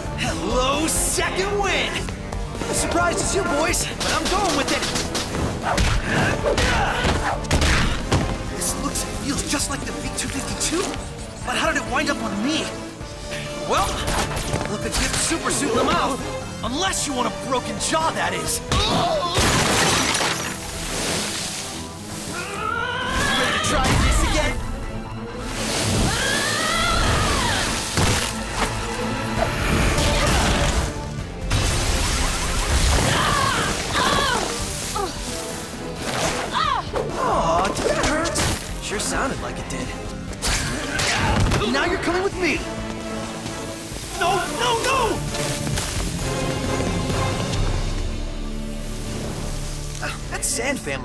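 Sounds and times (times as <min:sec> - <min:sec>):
dramatic score music: 0:00.0 - 0:51.0
glass shattering: 0:19.4 - 0:20.6
rain-like hiss: 0:20.5 - 0:22.4, 0:43.0 - 0:50.4.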